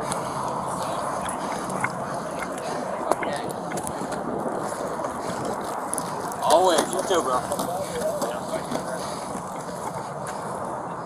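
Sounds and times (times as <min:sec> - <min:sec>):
steady outdoor noise: 0:00.0 - 0:11.0.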